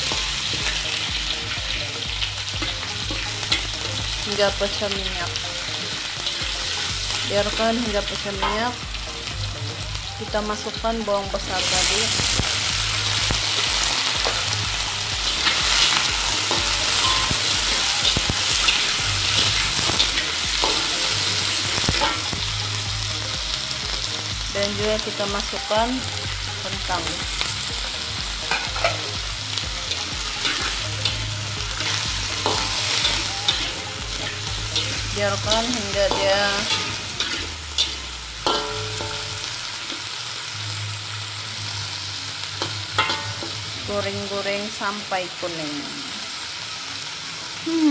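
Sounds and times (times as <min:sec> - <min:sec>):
onion sizzling in hot oil: 0:00.0 - 0:47.9
metal spatula scraping pan: 0:28.5 - 0:29.1, 0:29.9 - 0:39.5.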